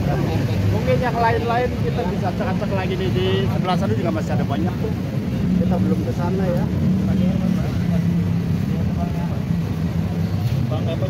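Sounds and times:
vehicle engines humming: 0:00.0 - 0:11.0
voices talking: 0:00.0 - 0:11.0.

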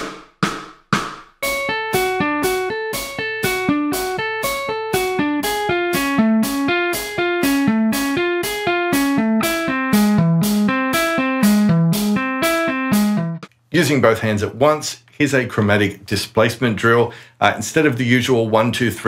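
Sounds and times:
electric guitar hammer-on notes: 0:01.4 - 0:13.5.

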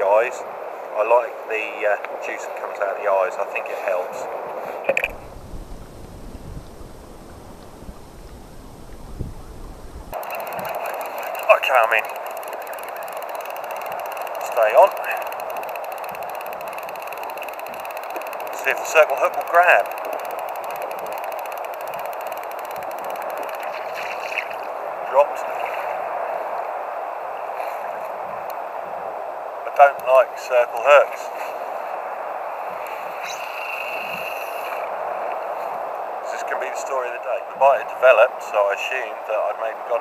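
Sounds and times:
wind buffeting microphone: 0:05.0 - 0:10.2
faint fast ticking: 0:05.1 - 0:24.7.

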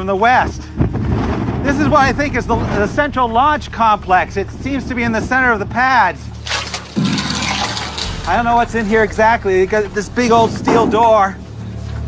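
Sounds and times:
metal door scraping open: 0:06.3 - 0:11.2.

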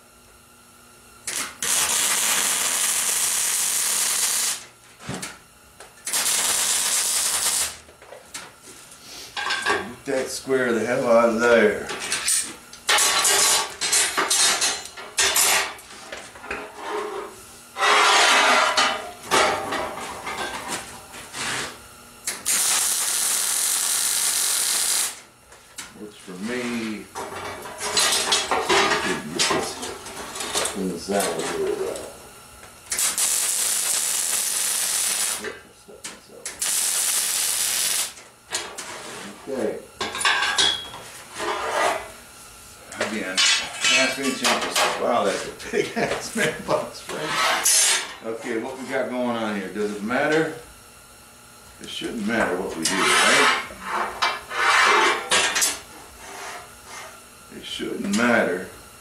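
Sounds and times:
welding crackling hiss: 0:01.2 - 0:04.7, 0:06.0 - 0:07.8, 0:21.4 - 0:27.1, 0:32.8 - 0:35.6, 0:36.5 - 0:38.2
steel bars clanking and scraping: 0:52.9 - 0:55.8.

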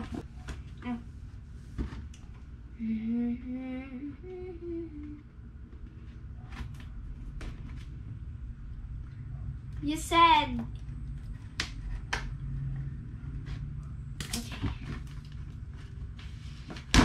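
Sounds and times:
girl humming a tune: 0:02.8 - 0:05.3.

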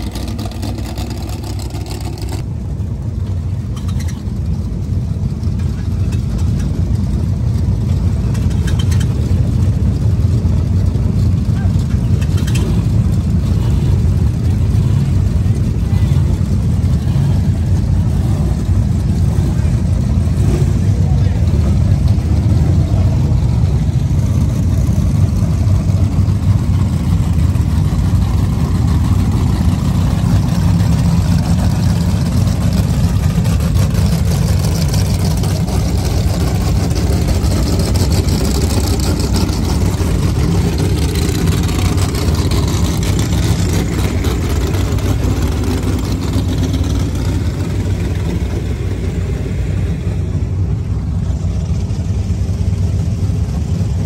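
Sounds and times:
buggy engines idling: 0:00.0 - 0:54.0.

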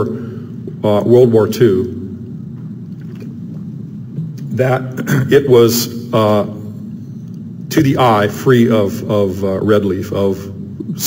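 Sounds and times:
low room rumble and hum: 0:00.0 - 0:11.0.

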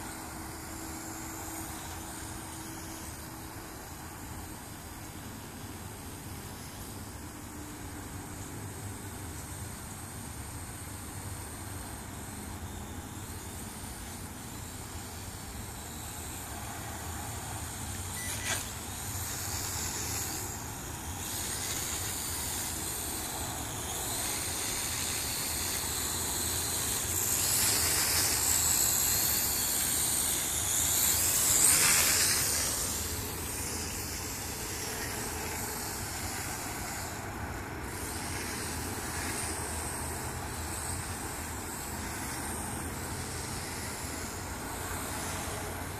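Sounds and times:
quadcopter propellers whirring: 0:00.0 - 0:45.9.

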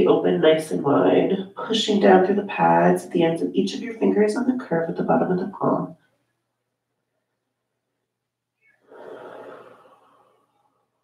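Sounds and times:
person exhaling: 0:08.9 - 0:10.4.

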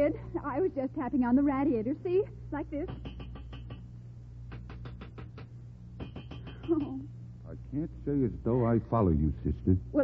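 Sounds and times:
low recording hum: 0:00.0 - 0:10.0
knocking on a radiator: 0:02.8 - 0:03.9, 0:04.5 - 0:06.9.

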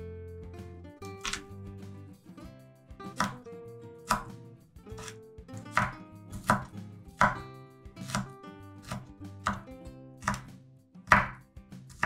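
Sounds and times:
knife chopping on wooden board: 0:01.1 - 0:01.5, 0:03.1 - 0:03.4, 0:04.1 - 0:07.4, 0:08.0 - 0:12.0.

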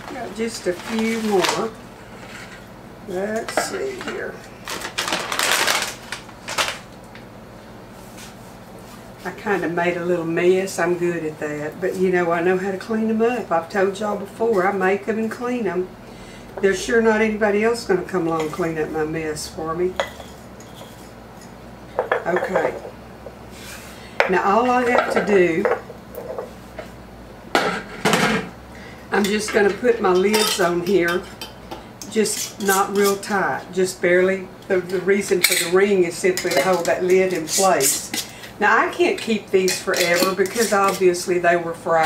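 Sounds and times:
plastic bag rustling: 0:00.0 - 0:01.8, 0:04.0 - 0:06.9.

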